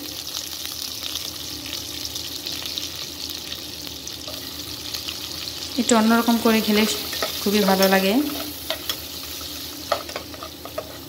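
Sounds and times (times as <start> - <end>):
onions sizzling in hot oil: 0.0 - 11.0.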